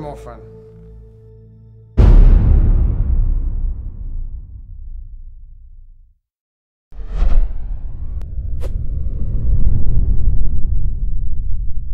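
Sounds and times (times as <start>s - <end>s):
deep loud rumbling: 2.0s - 5.9s, 7.0s - 11.9s.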